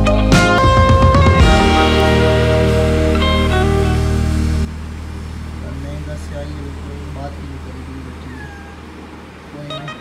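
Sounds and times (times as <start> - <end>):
cat meowing: 8.2 - 9.0.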